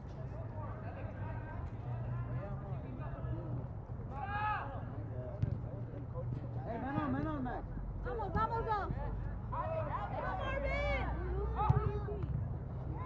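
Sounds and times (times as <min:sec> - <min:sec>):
loud shout: 0:04.1 - 0:04.9.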